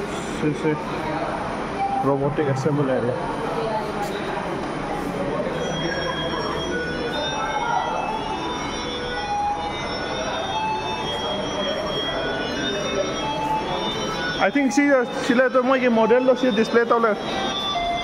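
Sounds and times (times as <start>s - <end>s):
faint voices: 0.0s - 18.0s
machinery hum and hiss: 0.0s - 18.0s.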